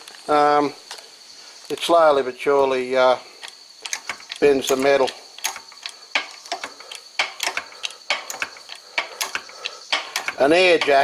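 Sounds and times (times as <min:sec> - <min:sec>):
hand pump jack clicks and clunks: 0:03.4 - 0:11.0.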